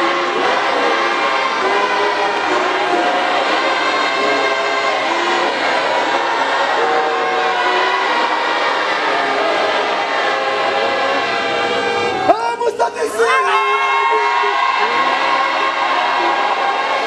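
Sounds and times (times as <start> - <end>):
congregation singing a hymn: 0.0 - 17.0.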